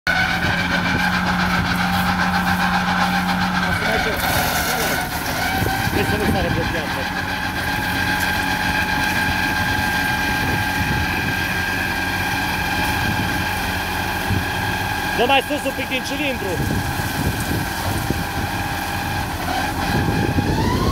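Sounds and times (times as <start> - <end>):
tractor and mower whining: 0.0 - 20.9.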